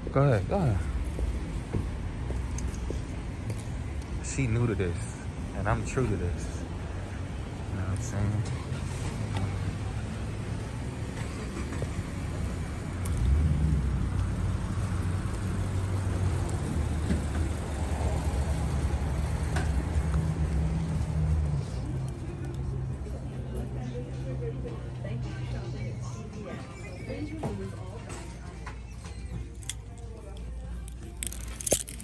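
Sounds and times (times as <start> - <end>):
vehicle engine rumbling: 0.0 - 32.0.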